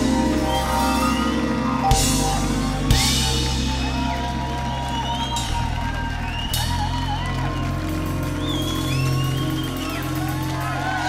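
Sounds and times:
live rock band sustained chords: 0.0s - 11.0s.

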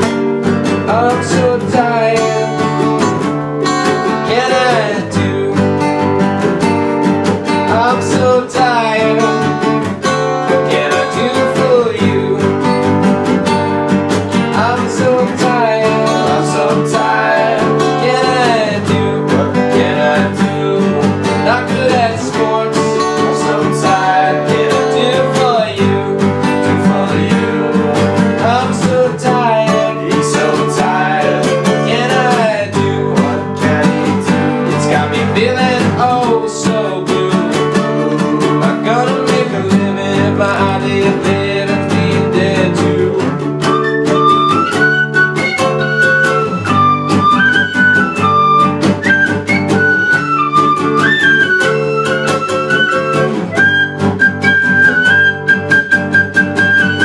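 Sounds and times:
acoustic guitars strumming: 0.0s - 57.0s
people singing: 0.9s - 2.9s, 4.0s - 6.0s, 7.7s - 9.6s, 10.5s - 12.8s, 14.5s - 43.4s.

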